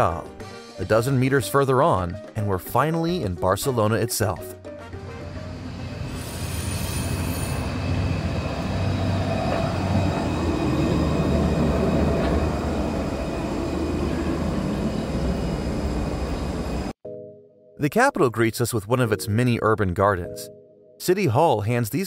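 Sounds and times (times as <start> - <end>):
tram rumbling past: 4.9 - 17.0.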